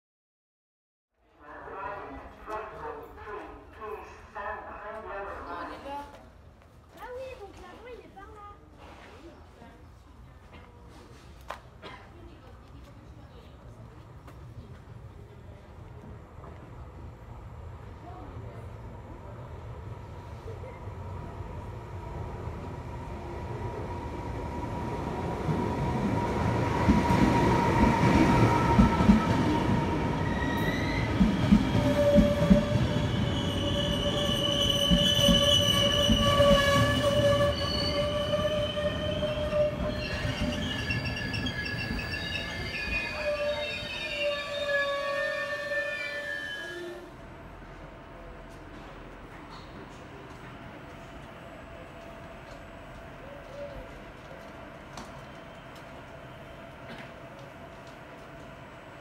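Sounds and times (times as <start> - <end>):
train rumbling: 9.9 - 59.0
high brake squeals: 32.9 - 47.0.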